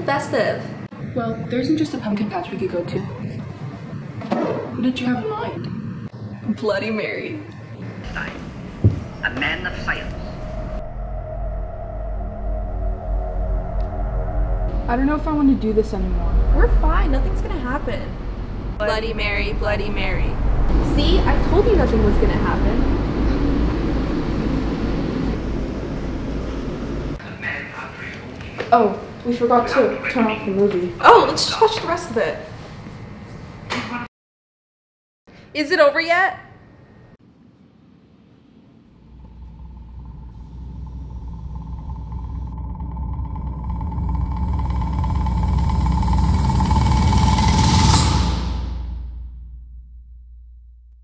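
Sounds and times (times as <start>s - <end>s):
low rumble with hiss: 0.0s - 31.6s, 37.0s - 50.9s
horror riser drone: 0.7s - 27.2s, 37.4s - 51.0s.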